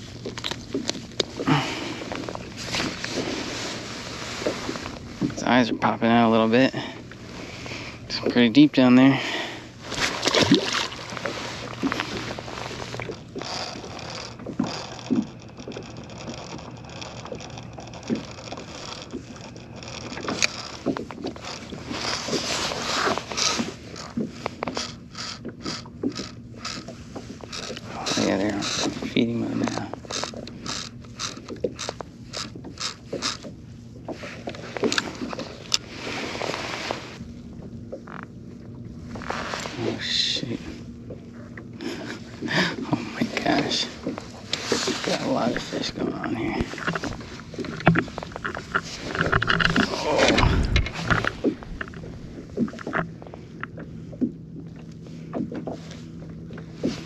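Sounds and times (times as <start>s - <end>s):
fishing reel clicking: 10.5s - 33.5s
handling noise: 43.4s - 53.8s.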